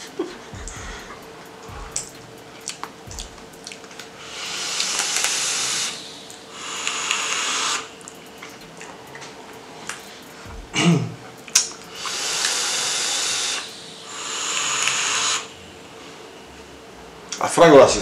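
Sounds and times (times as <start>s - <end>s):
breathy vapour hisses: 0.0s - 16.8s.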